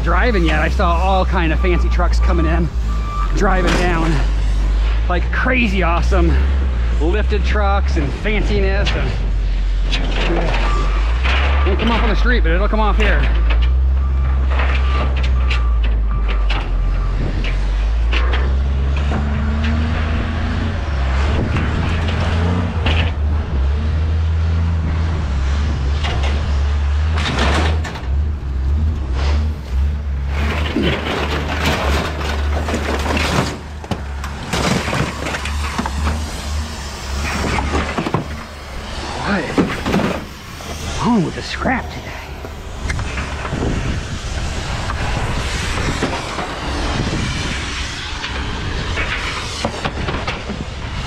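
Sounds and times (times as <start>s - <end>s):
engine rumble: 0.0s - 51.0s
scrap metal clanking: 27.1s - 38.6s.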